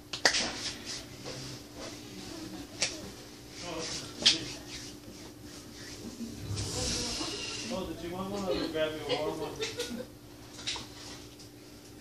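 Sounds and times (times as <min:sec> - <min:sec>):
finger snap: 0:00.1 - 0:00.6, 0:02.8 - 0:03.1.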